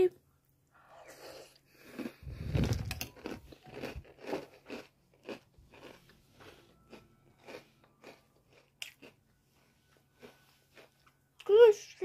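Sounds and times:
person chewing crunchy cereal: 0.9 - 11.4.

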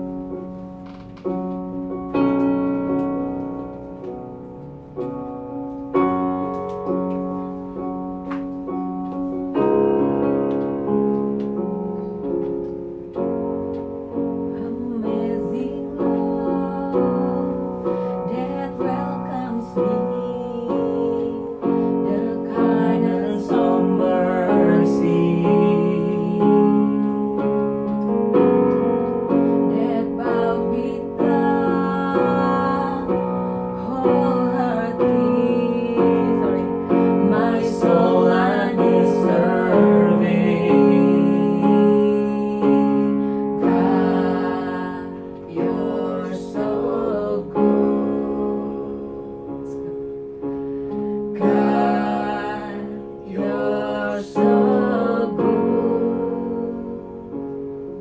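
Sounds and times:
electronic keyboard piano chords: 0.0 - 58.0
woman singing: 14.5 - 27.4, 29.6 - 49.9, 51.4 - 57.1.

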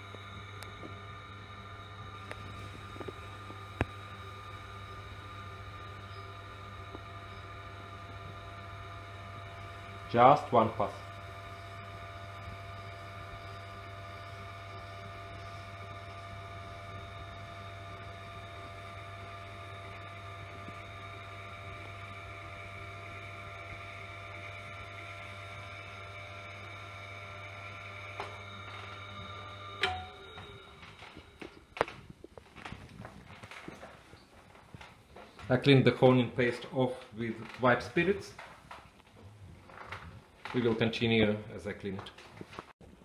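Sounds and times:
electric motor humming: 0.0 - 33.9.

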